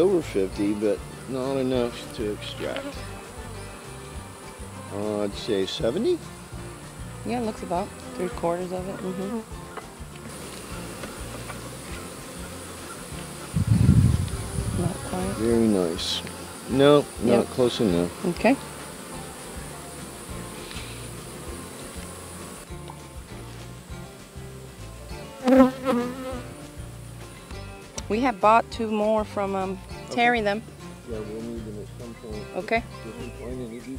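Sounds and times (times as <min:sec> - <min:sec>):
bees buzzing: 0:00.0 - 0:31.1
rough low rush: 0:12.6 - 0:15.6.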